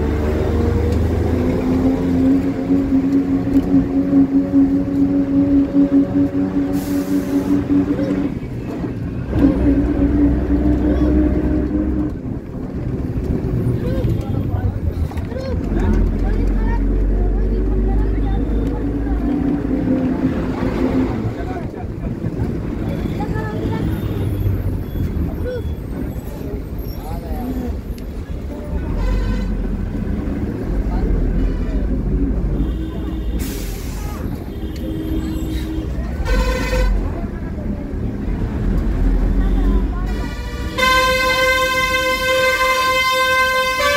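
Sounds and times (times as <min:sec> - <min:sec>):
motor vehicles passing: 0:00.0 - 0:43.9
people's voices: 0:00.0 - 0:43.9
horns honking: 0:22.8 - 0:26.2, 0:28.8 - 0:30.0, 0:31.2 - 0:37.3, 0:39.2 - 0:43.9.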